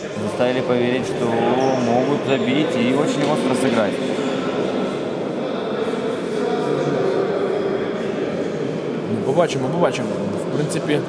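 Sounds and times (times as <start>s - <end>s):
sports hall din: 0.0s - 11.0s.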